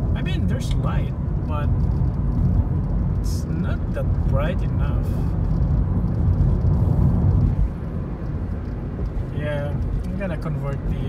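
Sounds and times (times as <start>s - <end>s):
car cabin road noise: 0.0s - 11.0s.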